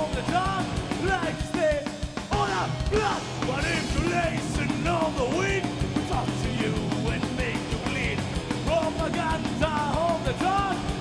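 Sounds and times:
high melodic guitar line: 0:00.0 - 0:11.0
thrash metal band playing: 0:00.0 - 0:11.0.

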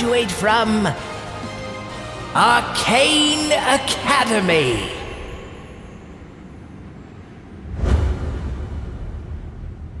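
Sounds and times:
low rumble: 0:05.1 - 0:10.0.

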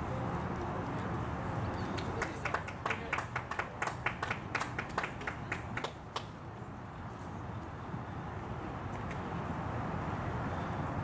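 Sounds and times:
low outdoor background noise: 0:00.0 - 0:11.0
hand clap: 0:02.0 - 0:06.3.

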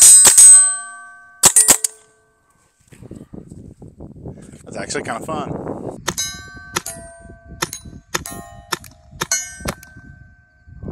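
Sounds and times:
launcher shots with metallic ring: 0:00.0 - 0:02.2, 0:06.1 - 0:10.0.

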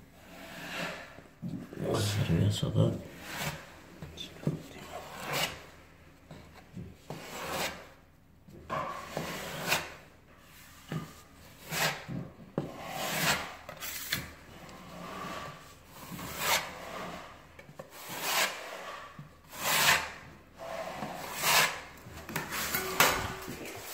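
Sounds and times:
filling knife scraping wall: 0:00.2 - 0:01.2, 0:12.7 - 0:23.9.

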